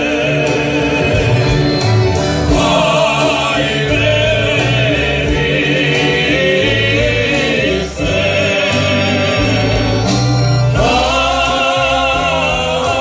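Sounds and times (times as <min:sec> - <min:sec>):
live band playing: 0:00.0 - 0:13.0
men singing folk song: 0:00.0 - 0:13.0.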